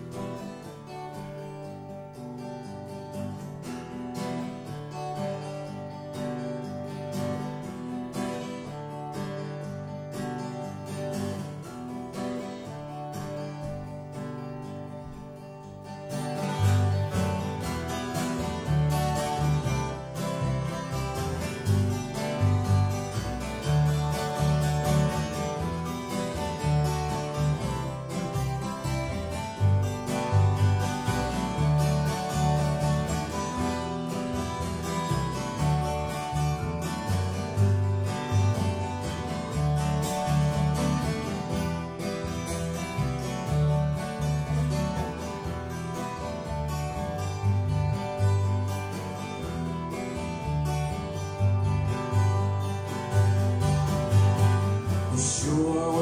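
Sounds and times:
acoustic guitar: 0.0 - 56.0
upright double bass: 0.0 - 56.0.

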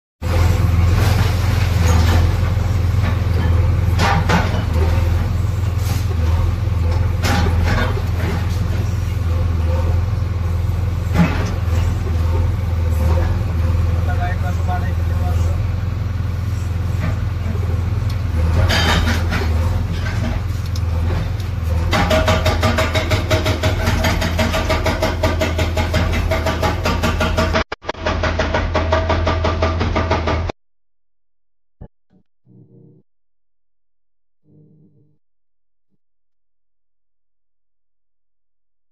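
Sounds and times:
diesel engine running under load: 0.2 - 30.5
hydraulic rock breaker hammering: 18.4 - 30.6.

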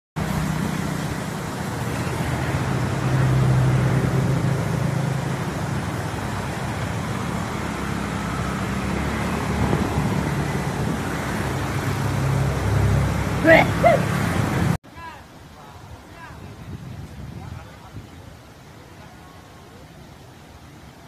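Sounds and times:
steady traffic rushing noise: 0.2 - 14.8
vehicle engine hum: 0.2 - 14.8.

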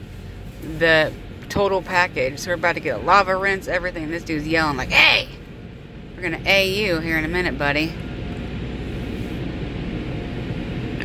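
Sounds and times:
car wash machinery: 0.0 - 11.0
car wash water spraying: 0.0 - 11.0
low rumble: 0.0 - 11.0.

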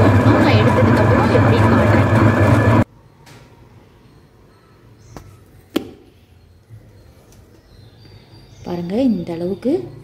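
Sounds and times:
wet grinder motor hum: 0.0 - 2.9.

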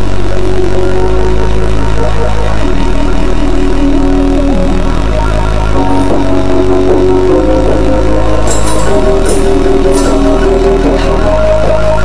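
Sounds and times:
heavy buzzing synth bass: 0.0 - 12.0
synth lines: 0.0 - 12.0.

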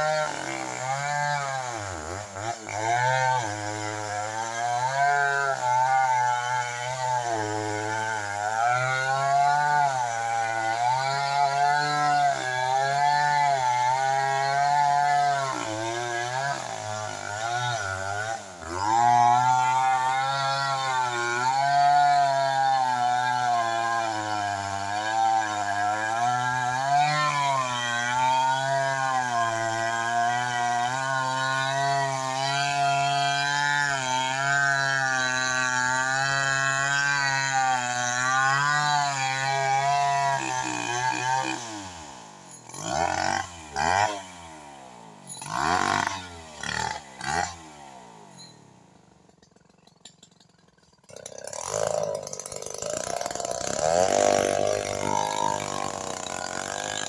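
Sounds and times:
chainsaw cutting log: 0.0 - 57.0.

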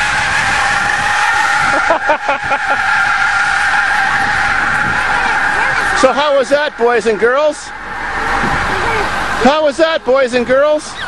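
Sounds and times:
steady high whistle: 0.0 - 9.7
loud bus engine driving past: 0.0 - 10.2.

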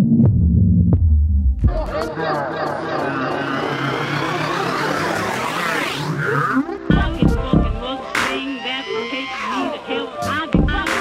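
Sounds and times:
gliding synthesizer tones: 1.7 - 10.5.

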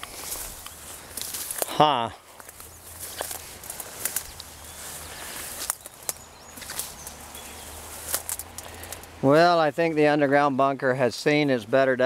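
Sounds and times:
crackles and snaps: 0.0 - 1.8, 2.4 - 4.6, 5.5 - 7.2, 8.0 - 9.2
footsteps through weeds: 0.0 - 9.1
plants rustling: 0.0 - 10.3.

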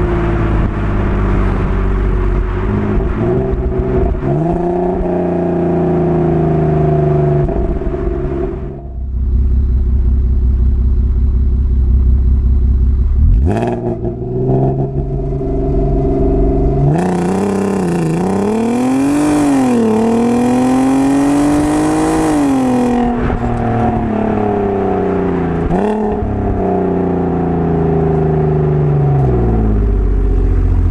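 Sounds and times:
car engine revving: 0.0 - 30.9.

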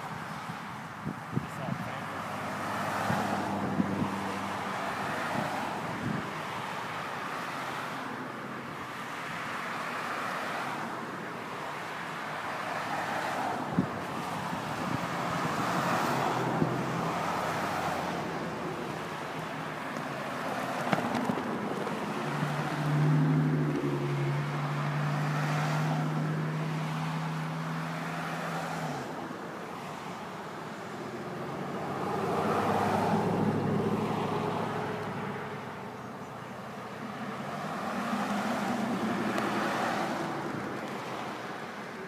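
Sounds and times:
cars passing on highway: 0.0 - 42.0.

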